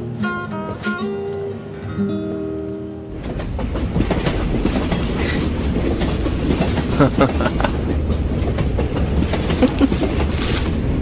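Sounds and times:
train clicks and knocks: 0:03.1 - 0:11.0
train rumbling: 0:03.1 - 0:11.0.

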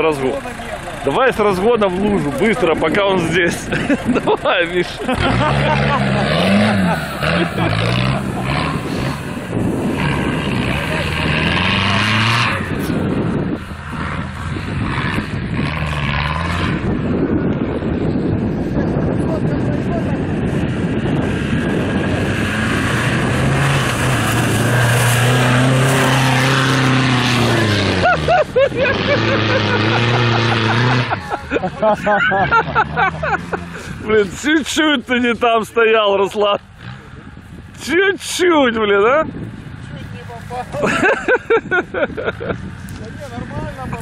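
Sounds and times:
off-road engine revving: 0:00.0 - 0:44.0.

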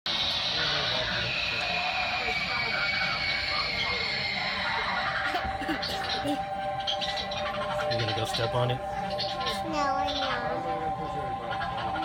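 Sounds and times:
indistinct voices: 0:00.1 - 0:12.0.

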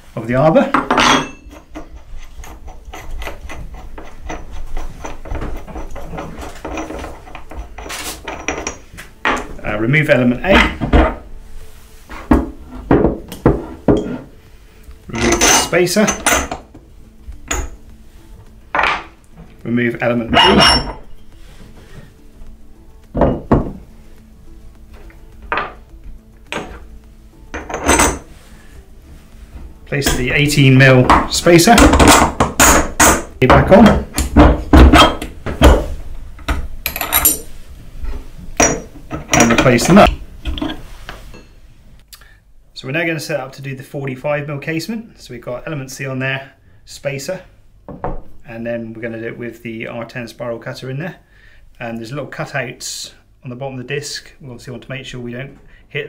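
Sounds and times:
metal parts knocking on wooden bench: 0:00.7 - 0:09.6, 0:10.5 - 0:11.3, 0:12.3 - 0:14.3, 0:23.0 - 0:23.9, 0:24.9 - 0:26.9, 0:27.5 - 0:28.3, 0:31.0 - 0:37.4
metal nut clicking and scraping: 0:00.8 - 0:09.5, 0:14.8 - 0:19.3, 0:24.9 - 0:28.4, 0:36.4 - 0:37.6.

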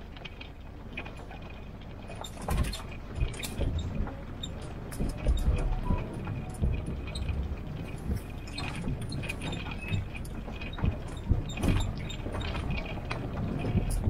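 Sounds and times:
body and gear rattling over bumps: 0:00.0 - 0:14.0
jeep engine rumble: 0:00.0 - 0:14.0.

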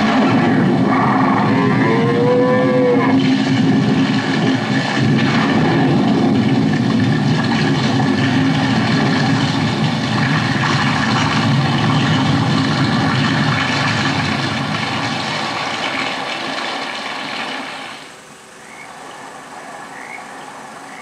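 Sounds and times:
heavy rain: 0:00.0 - 0:21.0.

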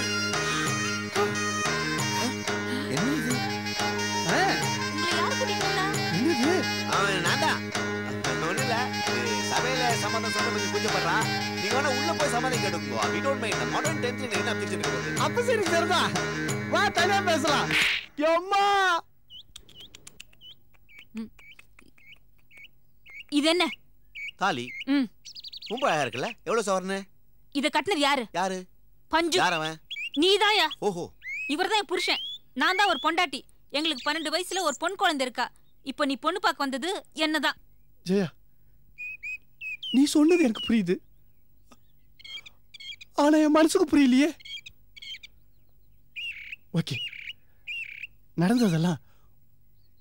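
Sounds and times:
small birds chirping: 0:00.0 - 0:28.1, 0:29.1 - 0:50.0.

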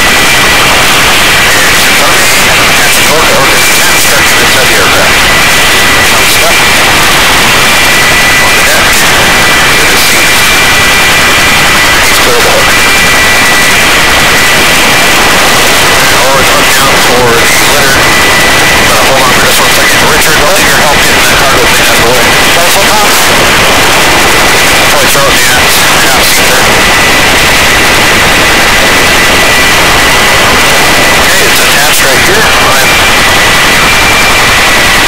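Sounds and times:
helicopter turbine and rotor: 0:00.0 - 0:35.0
thin high whine: 0:00.0 - 0:35.0.

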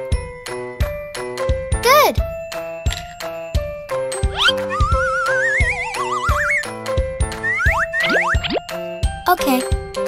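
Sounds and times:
bouncy children's music: 0:00.0 - 0:10.0
slide whistle: 0:04.4 - 0:06.6
cartoon boing: 0:04.4 - 0:06.7, 0:07.4 - 0:08.6.

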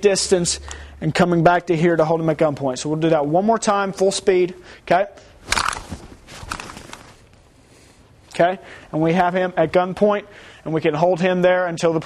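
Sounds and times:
clothing rustling: 0:05.3 - 0:08.2.

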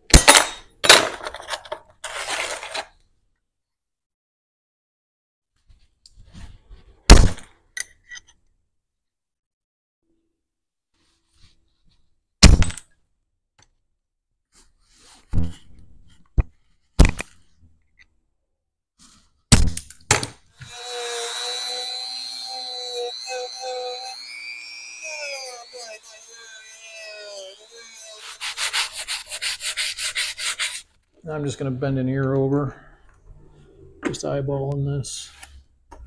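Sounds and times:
rotary tool sanding whine: 0:20.6 - 0:30.8
snips cutting metal: 0:20.6 - 0:30.8.

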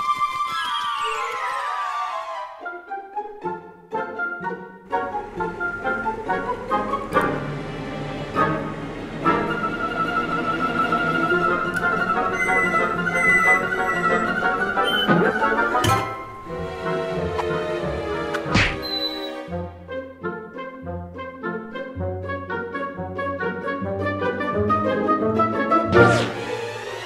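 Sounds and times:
orchestral bowed strings: 0:01.1 - 0:27.0.

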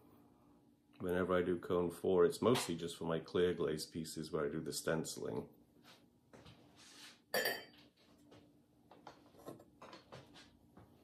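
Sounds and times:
ceramic pot clinking: 0:07.3 - 0:07.8.

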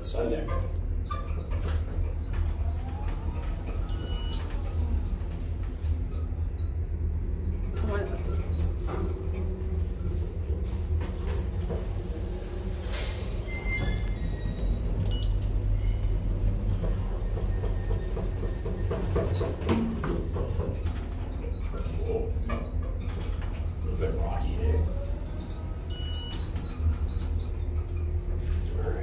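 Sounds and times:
elevator doors sliding: 0:00.0 - 0:29.0
elevator hum: 0:00.0 - 0:29.0.

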